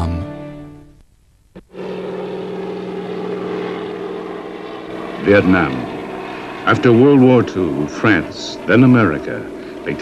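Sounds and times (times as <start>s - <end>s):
propeller aircraft engines droning: 1.4s - 10.0s.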